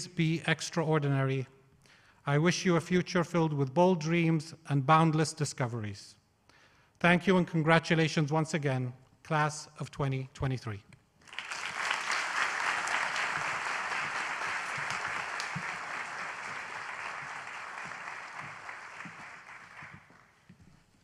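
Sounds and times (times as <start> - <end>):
audience applauding: 11.2 - 20.4.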